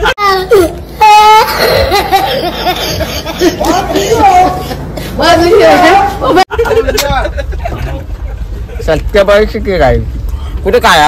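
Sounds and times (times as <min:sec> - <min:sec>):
boy crying: 0:00.0 - 0:06.4
boy laughing: 0:00.0 - 0:08.8.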